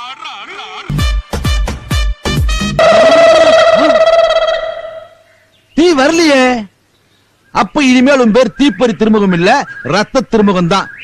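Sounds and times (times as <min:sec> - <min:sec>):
man speaking: 0:00.0 - 0:01.0.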